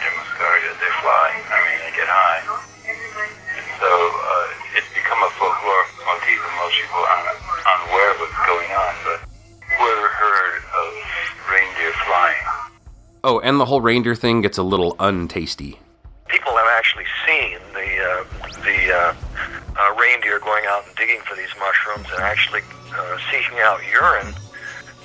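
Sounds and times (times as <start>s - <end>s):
steady low hum: 0.0s - 13.3s, 15.8s - 25.0s
man talking: 3.8s - 12.6s, 13.2s - 24.9s.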